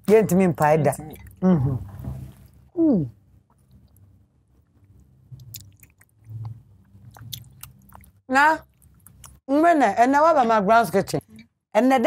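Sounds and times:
chewing: 3.5s - 9.4s
wet mouth clicks: 3.5s - 9.4s.

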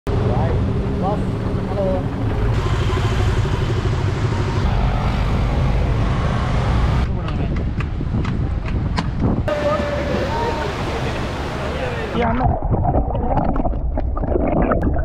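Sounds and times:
wind rumble: 0.1s - 11.4s, 12.1s - 15.0s
motorcycle engines running: 0.1s - 12.1s.

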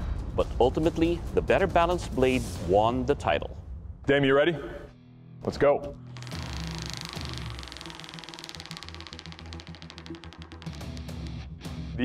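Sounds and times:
background music: 0.0s - 12.0s
prize wheel ticking: 6.2s - 11.3s.

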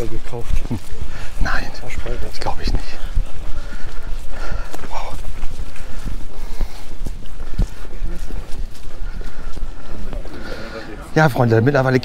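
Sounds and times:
footsteps on gravel and leaves: 0.0s - 11.3s.

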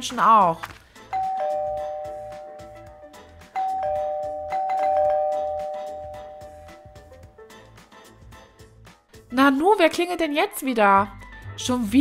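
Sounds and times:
two-tone doorbell chime: 1.1s - 7.2s.

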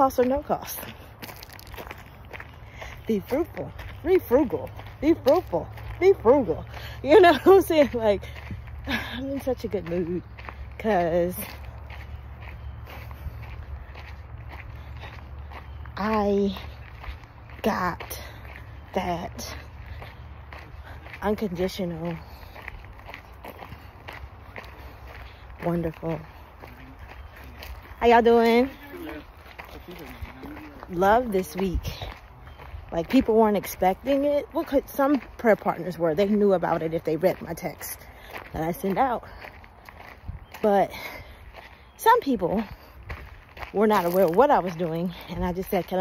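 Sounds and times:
footsteps on dirt trail: 0.0s - 46.0s.

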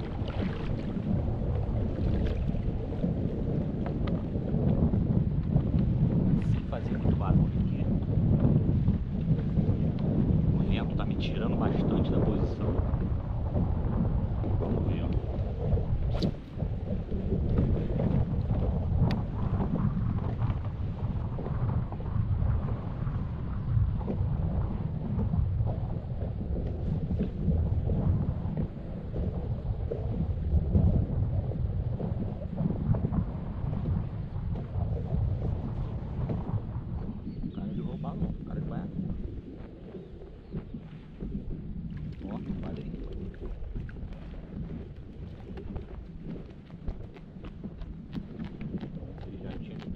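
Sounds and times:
wind buffeting microphone: 0.0s - 49.9s.

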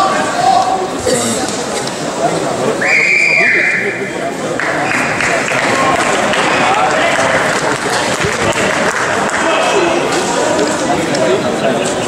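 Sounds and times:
crowd chatter: 0.0s - 12.0s
people clapping: 4.4s - 12.0s.

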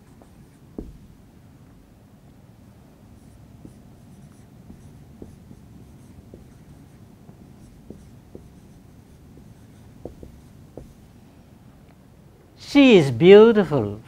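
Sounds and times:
marker scratching on whiteboard: 0.0s - 1.1s, 3.1s - 11.2s.

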